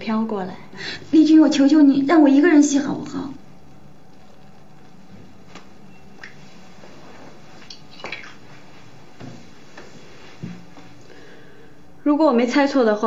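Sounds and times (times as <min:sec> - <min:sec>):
small splashes and drips of bath water: 0:07.6 - 0:08.6.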